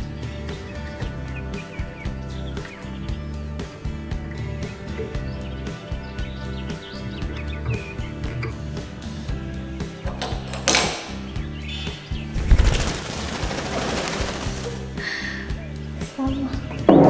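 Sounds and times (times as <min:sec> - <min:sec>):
background music with beat: 0:00.0 - 0:17.0
loud fast rattle: 0:12.4 - 0:14.9.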